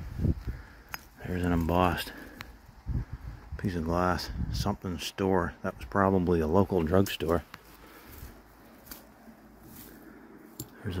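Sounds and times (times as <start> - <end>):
man speaking: 1.2 - 2.2, 3.6 - 7.5, 10.8 - 11.0.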